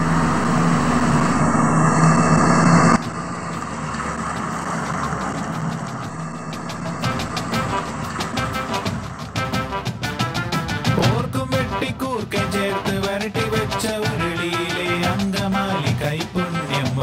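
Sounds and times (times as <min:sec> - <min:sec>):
car engine humming: 0:00.0 - 0:10.9
background music with beat: 0:03.0 - 0:17.0.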